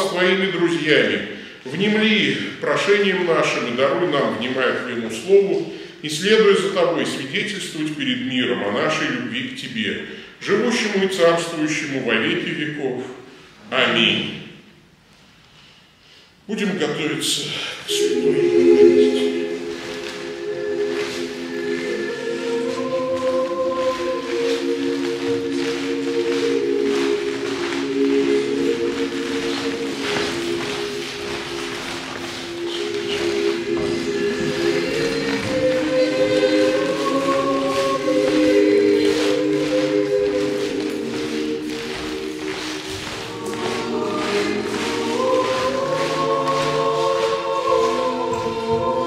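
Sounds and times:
slow choral church music: 0:00.0 - 0:49.0.

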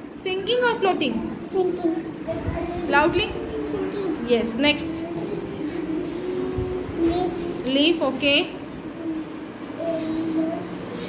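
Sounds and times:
room noise: 0:00.0 - 0:11.0
steady low hum: 0:00.0 - 0:11.0.

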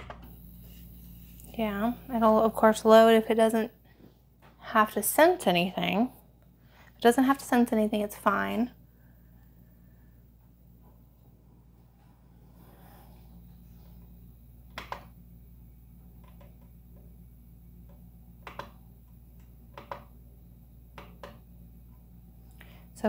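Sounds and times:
faint steady hum: 0:00.0 - 0:23.0.

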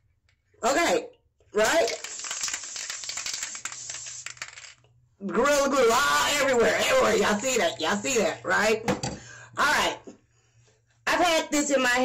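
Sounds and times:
aerosol spray hiss: 0:02.0 - 0:04.4.

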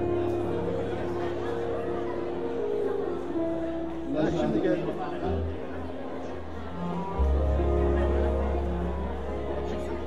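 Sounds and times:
background music: 0:00.0 - 0:10.0
chatter of many voices: 0:00.0 - 0:10.0.

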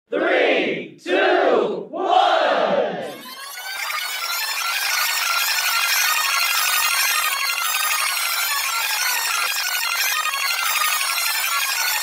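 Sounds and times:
group of voices shouting: 0:00.1 - 0:03.3
music: 0:03.1 - 0:12.0.

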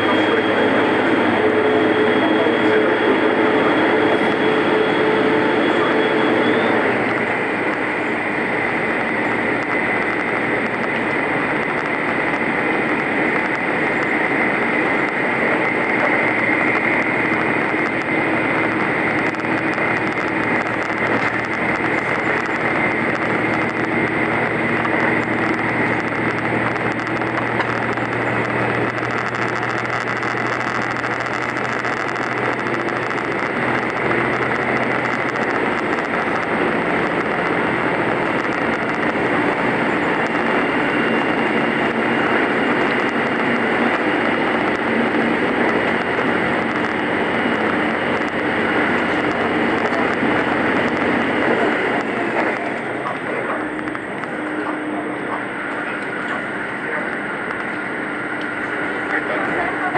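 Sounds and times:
diesel engine droning: 0:00.0 - 0:59.9
train wheels running on rail: 0:00.0 - 0:59.9.

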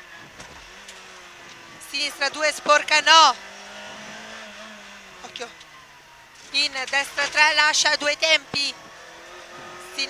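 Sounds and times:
car engine low drone: 0:00.0 - 0:10.0.

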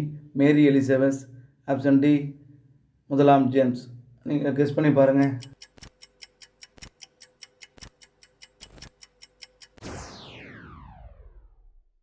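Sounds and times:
fast clock-like ticking: 0:05.1 - 0:09.9
falling sweep: 0:09.8 - 0:11.8
loud hit: 0:09.8 - 0:11.8.

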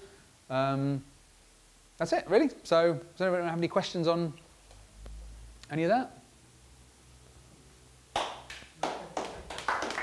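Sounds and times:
scattered hand claps: 0:08.1 - 0:10.0.

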